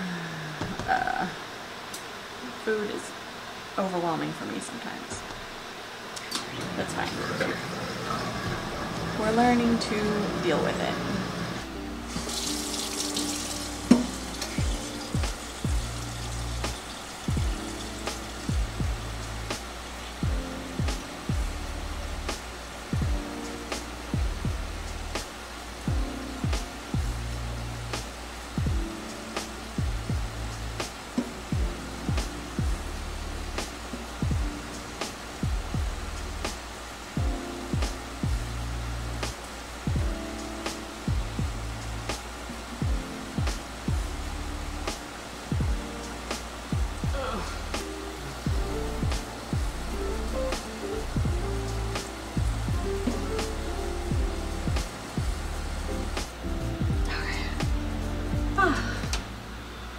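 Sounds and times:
music with beat and deep bass: 0:13.6 - 0:25.3, 0:25.9 - 0:59.5.

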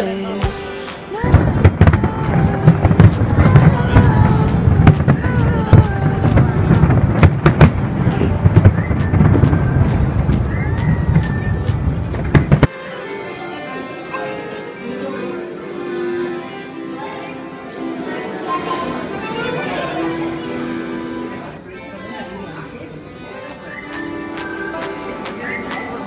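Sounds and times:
quiet music: 0:00.0 - 0:26.0
fireworks bursting: 0:00.4 - 0:12.7
fireworks whistling: 0:00.8 - 0:12.7.

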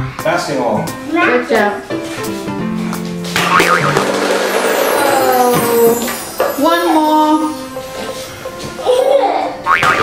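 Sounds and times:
background music: 0:00.0 - 0:10.0
plastic bowling pins clattering: 0:03.4 - 0:06.6
brief wavering high sound: 0:03.6 - 0:06.5.

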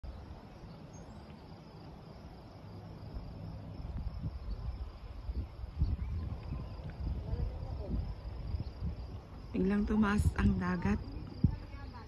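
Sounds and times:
faint insect chirring: 0:00.1 - 0:12.0.

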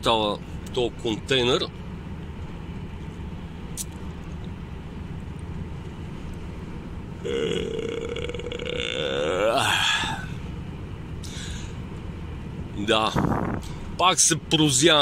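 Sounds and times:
truck engine and tyres drone: 0:00.0 - 0:15.0
man yawning: 0:07.2 - 0:10.4.

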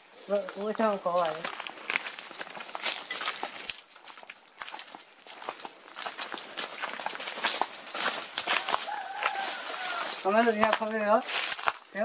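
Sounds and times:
footsteps on dry leaves: 0:00.2 - 0:12.0.

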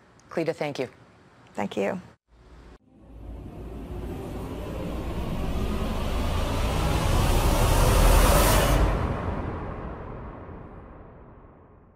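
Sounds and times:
rushing noise: 0:02.4 - 0:11.9.

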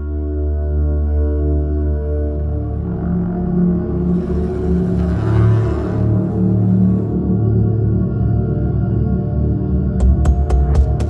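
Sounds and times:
low sustained drone: 0:02.0 - 0:07.8.

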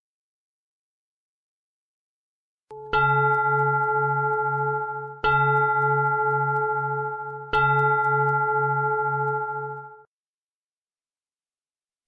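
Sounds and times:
meditation bell ringing: 0:02.7 - 0:10.1.

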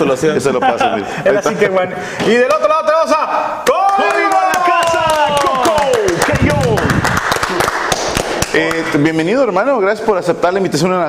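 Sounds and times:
man speaking: 0:00.0 - 0:06.9, 0:08.5 - 0:11.0
men cheering: 0:03.5 - 0:07.8
hands clapping and slapping table: 0:03.6 - 0:09.0.

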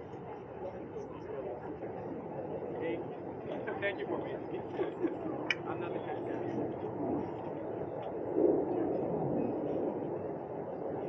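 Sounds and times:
low rumbling outdoor background noise: 0:00.0 - 0:11.0.

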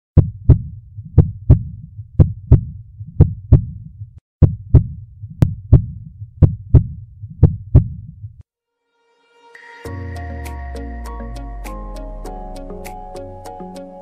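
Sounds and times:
heartbeat thumps: 0:00.2 - 0:08.4.

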